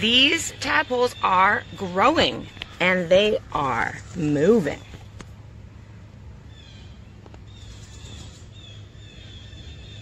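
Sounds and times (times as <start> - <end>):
bird chirping: 0.0 - 5.1, 6.4 - 10.0
steady low hum: 0.0 - 10.0.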